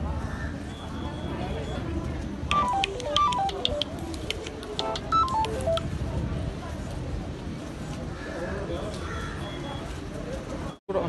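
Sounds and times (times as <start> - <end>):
short electronic beeps: 2.5 - 3.9.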